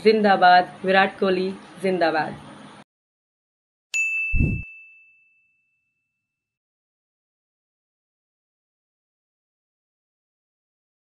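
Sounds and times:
bright electronic chime: 0:04.4 - 0:04.6.

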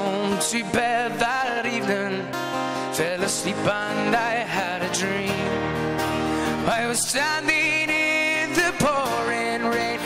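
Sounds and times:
man singing: 0:00.0 - 0:10.0
strummed acoustic guitar: 0:00.0 - 0:10.0.

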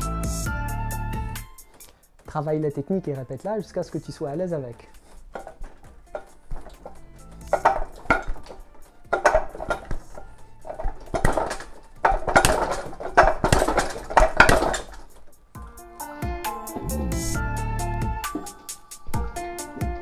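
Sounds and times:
arms knocking on wooden dummy: 0:05.4 - 0:15.2.

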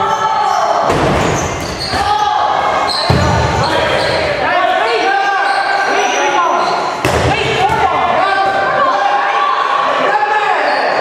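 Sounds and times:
players shouting: 0:00.0 - 0:11.0.

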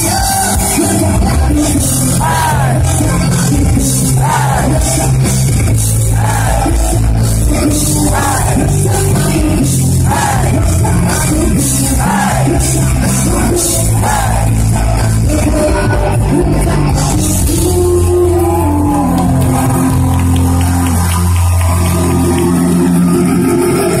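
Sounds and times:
person singing: 0:00.0 - 0:20.4
live rock band playing: 0:00.0 - 0:24.0.

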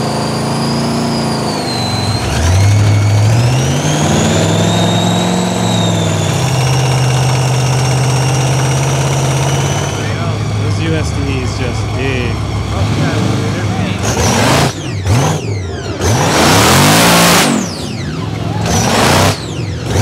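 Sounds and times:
buggy engine revving: 0:00.0 - 0:20.0.

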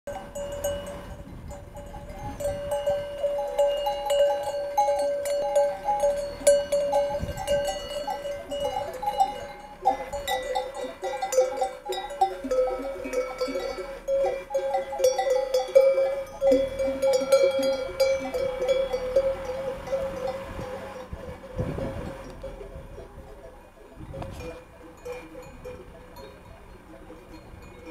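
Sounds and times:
sheep bells clanking: 0:00.1 - 0:27.9.

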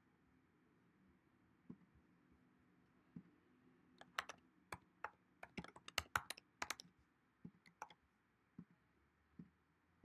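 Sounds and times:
typing on keyboard: 0:04.0 - 0:06.9, 0:07.7 - 0:08.0.

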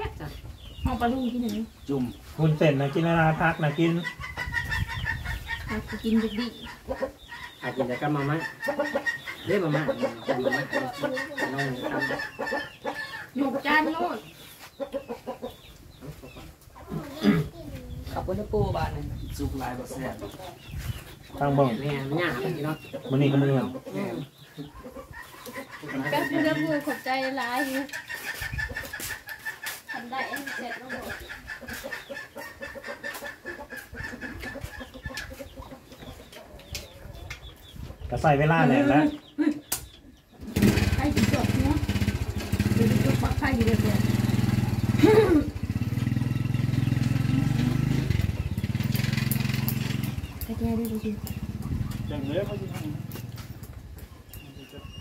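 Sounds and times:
chickens clucking: 0:00.0 - 0:55.0.

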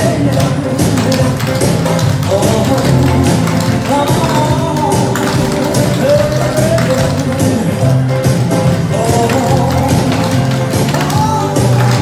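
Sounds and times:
upbeat song over speakers: 0:00.0 - 0:12.0.

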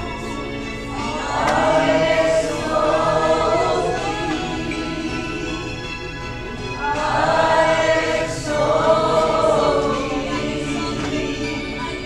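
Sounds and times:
congregation singing: 0:00.0 - 0:12.0.

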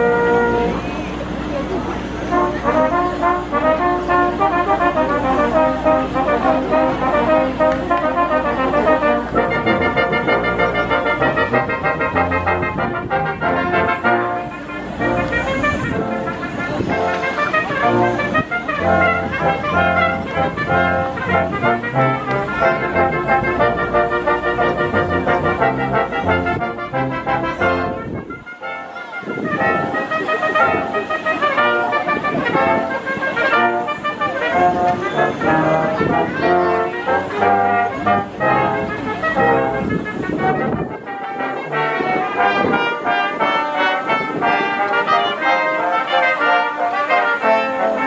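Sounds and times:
brass ensemble playing chords: 0:00.0 - 0:48.0.

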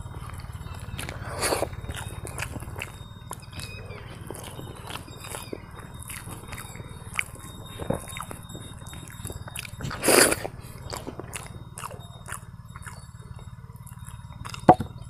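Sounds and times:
crunchy rustle: 0:00.0 - 0:13.6.

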